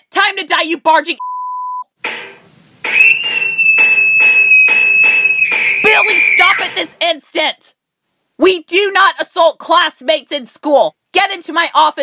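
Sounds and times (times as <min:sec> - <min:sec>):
fire alarm ringing: 0:02.9 - 0:06.4.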